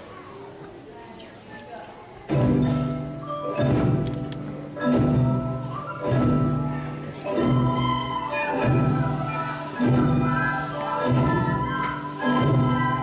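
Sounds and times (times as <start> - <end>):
ukuleles recorders and hand drums: 2.3 - 13.0.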